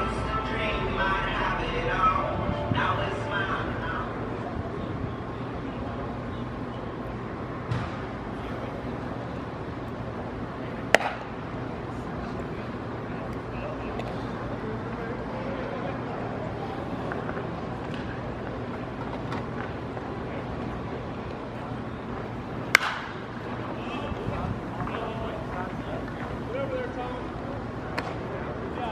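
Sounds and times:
background crowd chatter: 0.0s - 28.9s
bat hitting ball: 10.9s - 11.3s, 22.7s - 23.2s.

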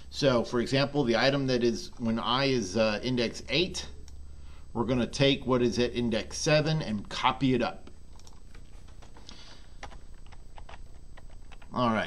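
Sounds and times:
computer keyboard typing: 8.1s - 9.2s, 9.8s - 11.8s.

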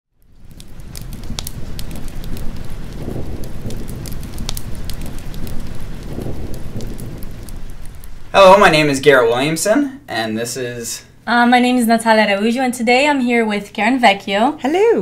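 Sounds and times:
fireplace fire crackling: 0.1s - 14.8s.

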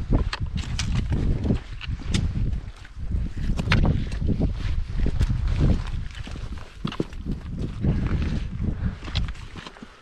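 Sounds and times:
wind rumble on microphone: 0.0s - 9.9s
boots crunching on stone: 0.0s - 10.0s
trekking poles clicking on rock: 0.0s - 10.0s.

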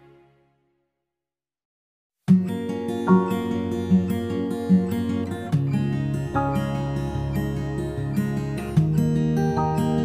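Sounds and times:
acoustic guitar strummed chords: 2.3s - 10.0s.

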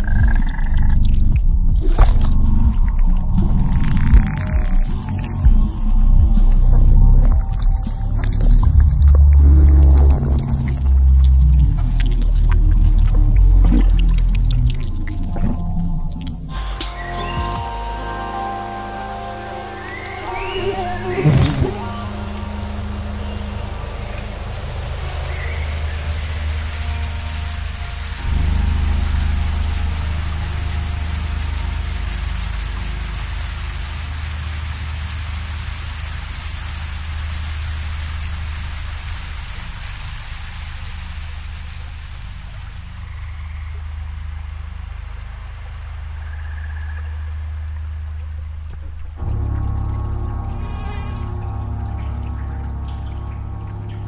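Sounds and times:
ambient music drone: 0.0s - 54.0s
running river water: 0.0s - 54.0s.

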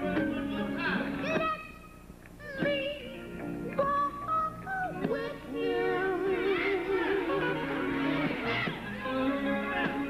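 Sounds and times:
male vocal quartet singing gospel: 5.2s - 10.0s.

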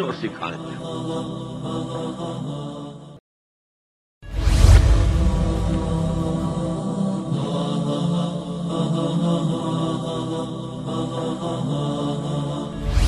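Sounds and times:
wordless vocal chanting: 0.0s - 3.2s, 4.5s - 13.0s.

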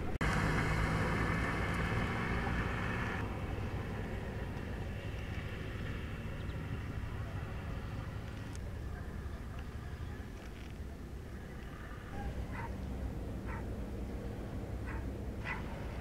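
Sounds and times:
car passing: 0.0s - 16.0s
distant traffic noise: 0.0s - 16.0s.

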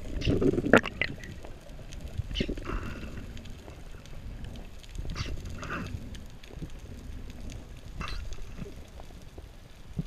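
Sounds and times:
muffled underwater rumble: 0.0s - 10.0s.

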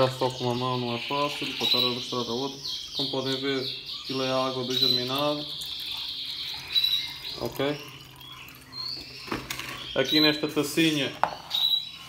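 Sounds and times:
water trickling and dripping: 0.0s - 2.1s, 2.8s - 9.9s.

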